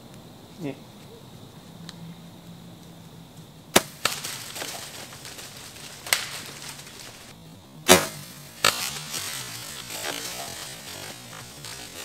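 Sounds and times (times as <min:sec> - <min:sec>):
rustling hiss: 0:00.0 - 0:12.0
bow string snaps: 0:06.0 - 0:07.0, 0:07.8 - 0:10.7.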